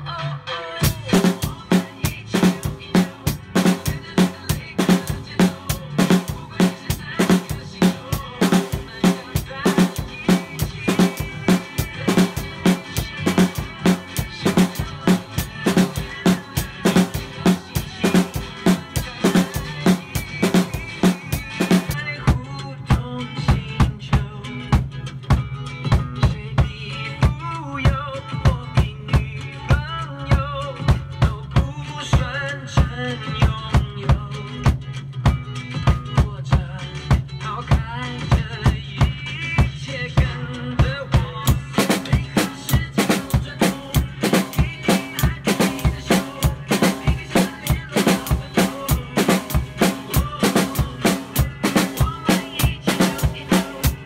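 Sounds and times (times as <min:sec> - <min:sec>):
recorded song playing: 0:00.0 - 0:54.0
drum kit playing a groove: 0:00.8 - 0:54.0.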